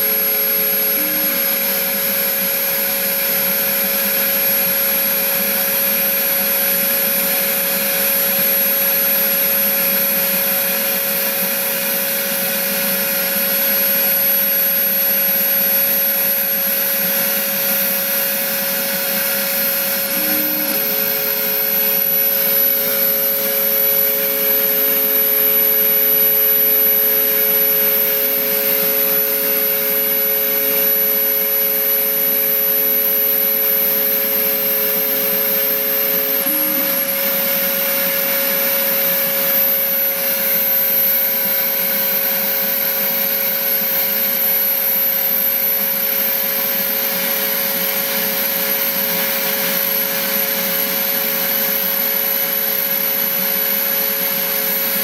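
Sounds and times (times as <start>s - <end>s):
milling machine whine: 0.0s - 55.0s.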